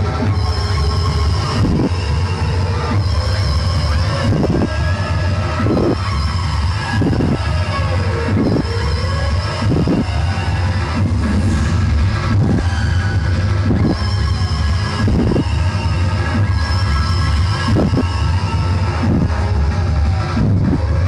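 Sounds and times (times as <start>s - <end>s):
loud dance music: 0.0s - 21.0s.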